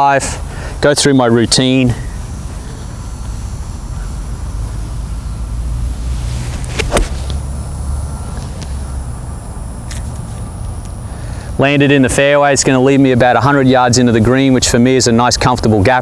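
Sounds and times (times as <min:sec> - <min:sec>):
golf club swish: 0:05.9 - 0:07.4
golf ball impact click: 0:06.4 - 0:07.4.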